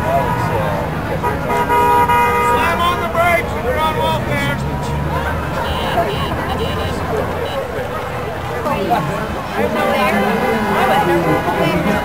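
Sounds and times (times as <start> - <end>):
car horn: 0.0 - 3.3, 5.5 - 7.8
passing traffic: 0.0 - 12.0
people calling out: 0.0 - 12.0.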